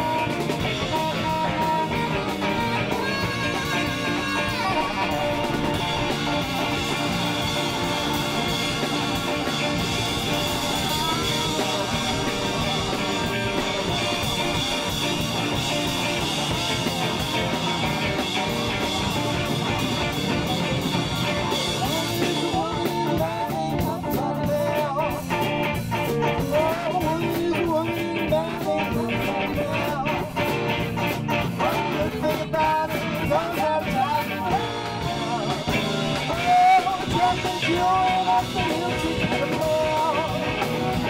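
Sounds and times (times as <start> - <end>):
live band playing: 0.0 - 41.0
man singing: 0.0 - 41.0.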